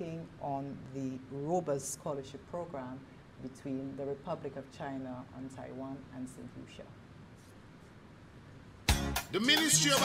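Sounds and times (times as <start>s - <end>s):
loud commercial music: 8.9s - 10.0s.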